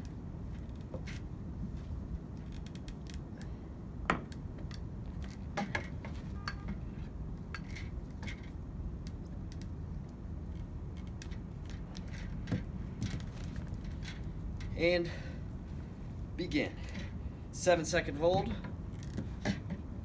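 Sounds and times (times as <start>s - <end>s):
low background rumble: 0.0s - 20.0s.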